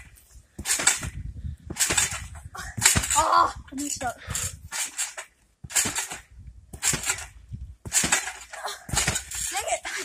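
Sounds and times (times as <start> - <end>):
trampoline bouncing impacts: 0.0 - 10.0.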